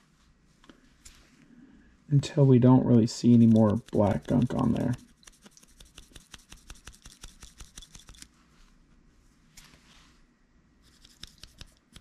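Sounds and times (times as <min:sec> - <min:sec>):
brush scratching: 0:03.2 - 0:08.3, 0:10.8 - 0:12.0.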